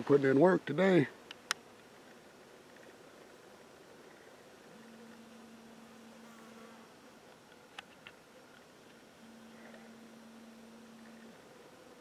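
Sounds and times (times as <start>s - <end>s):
flying insect buzz: 4.1s - 12.0s.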